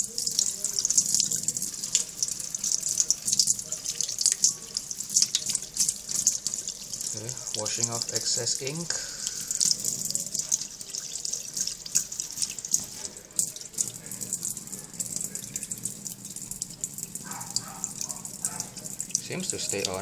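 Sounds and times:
tap water running into sink: 0.0 - 20.0.

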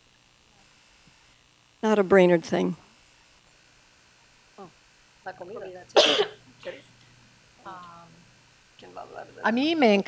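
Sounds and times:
person coughing: 6.0 - 6.8.

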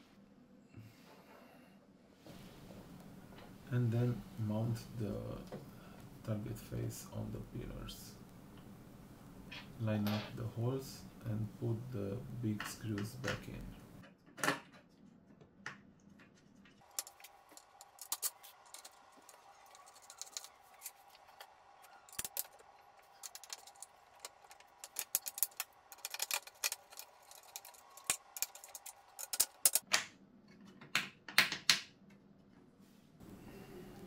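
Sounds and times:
screwdriver and screws clinking: 16.9 - 20.9, 23.2 - 29.8.

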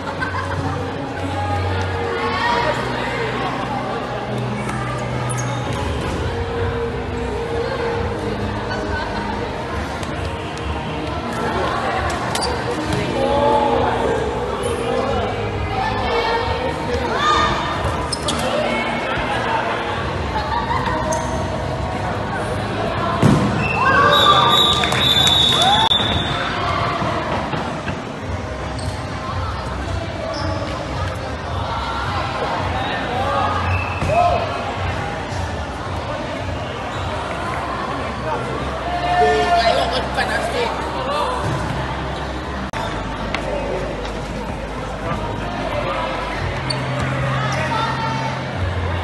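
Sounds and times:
people shouting and cheering: 0.0 - 27.8, 29.2 - 49.0
hall hubbub: 0.0 - 49.0
ball hitting court: 23.2 - 23.6.

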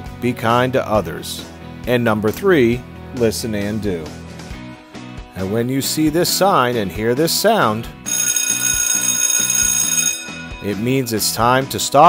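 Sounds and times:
bell-like ringing signal: 8.1 - 11.3.

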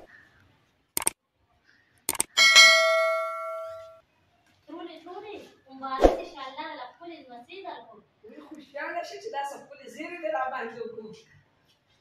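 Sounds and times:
mouse clicks: 1.0 - 1.2, 2.1 - 2.4
bright bell ding: 2.4 - 4.0.

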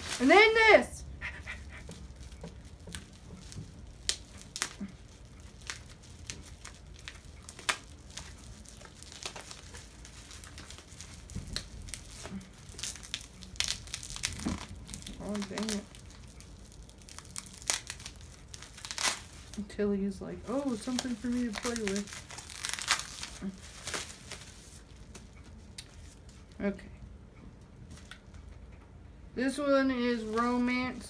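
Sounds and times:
packaging crinkling: 0.0 - 0.7, 1.3 - 19.7, 20.4 - 26.2
packaging tearing: 2.2 - 19.6, 20.5 - 24.6.

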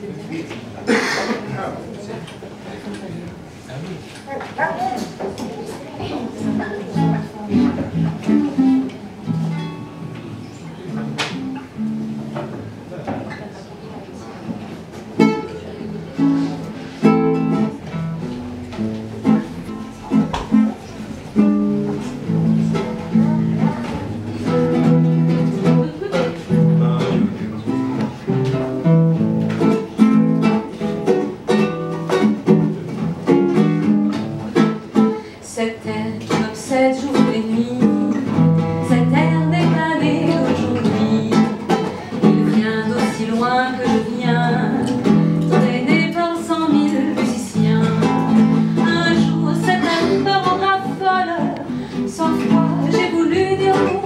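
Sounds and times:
classical guitar plucked: 4.9 - 54.0
woman singing: 35.4 - 54.0.

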